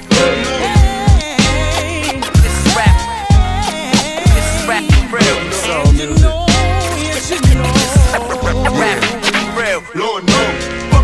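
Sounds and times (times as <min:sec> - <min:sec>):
hip-hop beat: 0:00.0 - 0:11.0
pitch-bending vocal: 0:00.3 - 0:10.6
deep bass line: 0:04.3 - 0:09.7.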